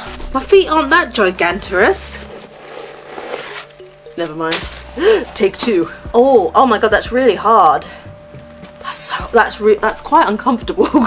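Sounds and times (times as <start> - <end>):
packing stuffing rustling: 1.8 - 5.5.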